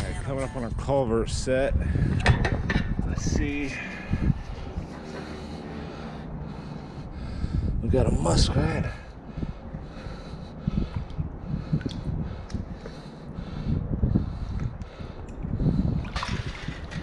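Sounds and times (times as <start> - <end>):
wind rumbling on microphone: 0.0 - 17.0
shallow water sloshing: 16.0 - 17.0
water splash: 16.1 - 17.0.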